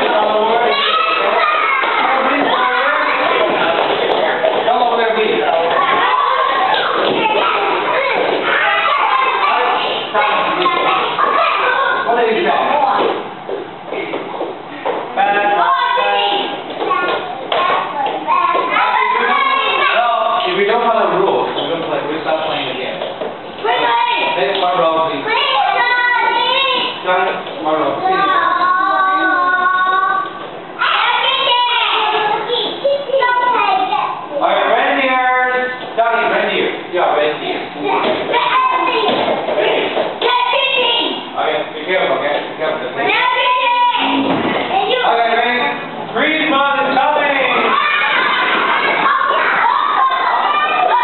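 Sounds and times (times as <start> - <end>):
children shouting and cheering: 0.0 - 3.8, 5.6 - 12.2, 15.4 - 20.5, 23.6 - 24.4, 25.2 - 27.0, 28.0 - 34.3, 37.8 - 41.3, 43.0 - 45.1, 47.2 - 51.0
young children singing: 28.0 - 32.9, 47.6 - 51.0.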